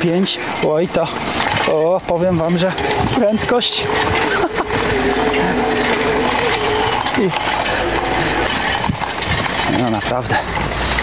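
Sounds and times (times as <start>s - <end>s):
tyres rolling: 0.0s - 11.0s
electric motor whining: 2.7s - 9.5s.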